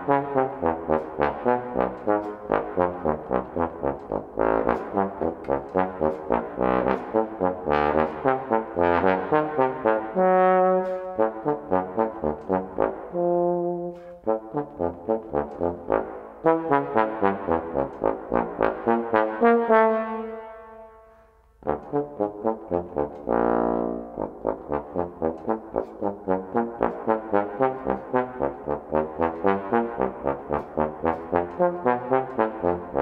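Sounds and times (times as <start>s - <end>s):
bass trombone playing: 0.0s - 33.0s.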